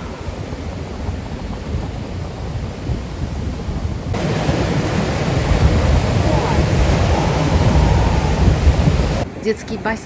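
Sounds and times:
surf washing over rocks: 0.0 - 9.3
wind rumble on microphone: 0.0 - 9.4.

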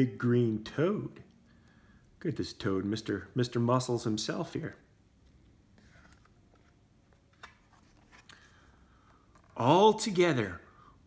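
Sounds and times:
book page turning click: 7.2 - 8.4.

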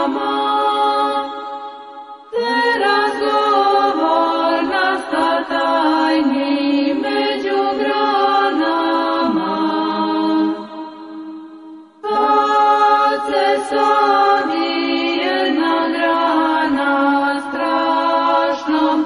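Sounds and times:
voices singing chant: 0.0 - 1.7, 2.3 - 19.0.

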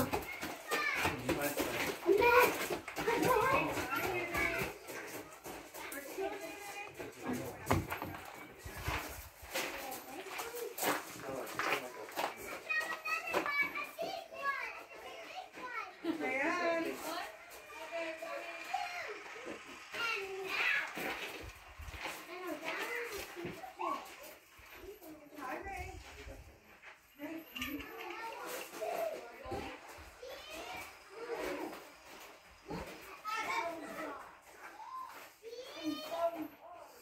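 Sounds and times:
children talking and calling out: 0.0 - 37.0.

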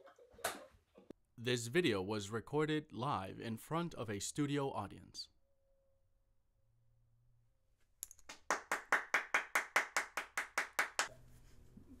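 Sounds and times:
person clapping hands: 8.0 - 11.1.

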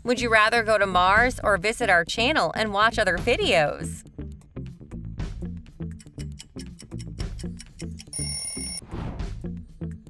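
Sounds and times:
background music with steady beat: 0.0 - 10.0
bright bell-like ding: 8.1 - 8.8.

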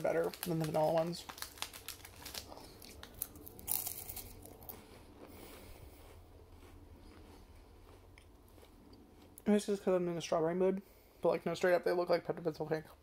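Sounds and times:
crunching wafer cookie: 0.0 - 9.5
soft chewing: 1.6 - 9.5.

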